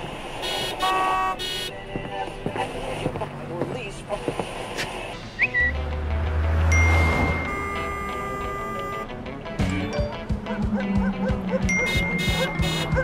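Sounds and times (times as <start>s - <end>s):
car horn honking: 0.4s - 1.8s, 6.7s - 9.2s, 11.8s - 13.0s
passers-by talking: 0.7s - 9.4s.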